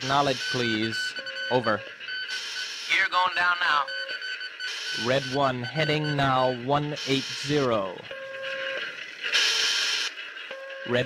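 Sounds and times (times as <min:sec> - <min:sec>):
radio static hiss: 0:00.0 - 0:00.8, 0:02.3 - 0:03.9, 0:07.0 - 0:07.9
short steady beep: 0:00.0 - 0:07.4
voice over radio: 0:02.9 - 0:03.9, 0:05.0 - 0:08.0.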